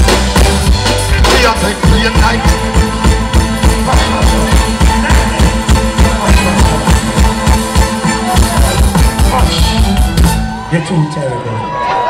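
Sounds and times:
drum kit: 0.0s - 10.6s.

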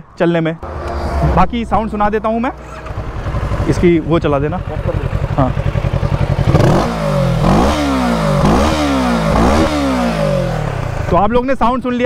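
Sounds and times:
motorcycle engine idling and revving: 0.6s - 12.0s.

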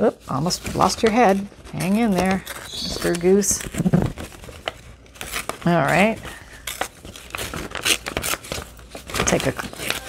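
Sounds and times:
paper rustling: 0.2s - 10.0s
book page tearing: 0.8s - 10.0s.

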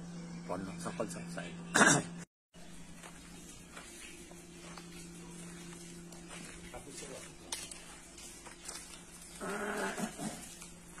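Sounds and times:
animal call: 9.4s - 10.5s.

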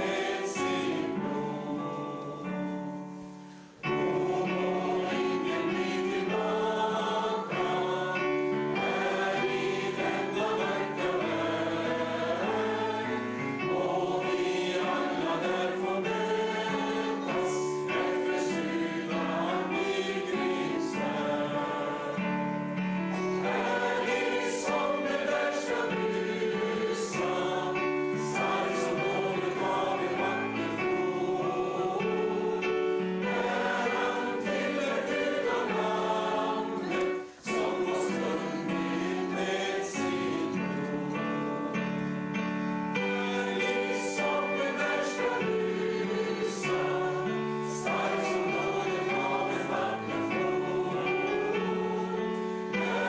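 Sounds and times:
congregation singing a hymn: 0.0s - 53.0s
keyboard accompaniment: 0.0s - 53.0s.

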